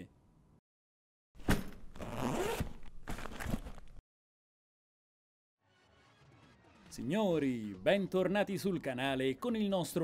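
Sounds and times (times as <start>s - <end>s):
backpack zipper pulled open: 1.9s - 3.7s.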